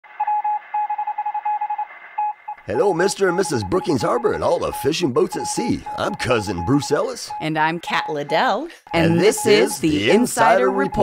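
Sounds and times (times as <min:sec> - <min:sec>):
morse code beeping: 0:00.2 - 0:11.0.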